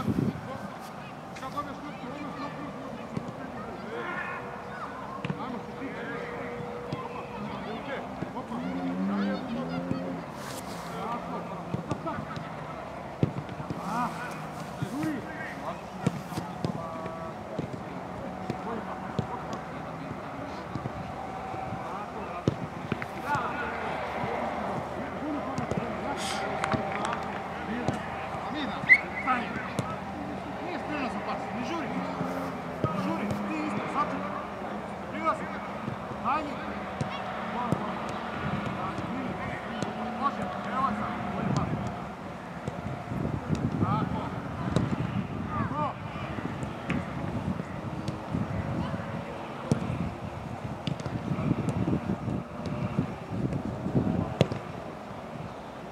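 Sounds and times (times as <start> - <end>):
distant players calling and chatting: 0.0 - 55.9
men shouting and talking: 0.0 - 55.9
footballs being kicked: 54.3 - 54.7.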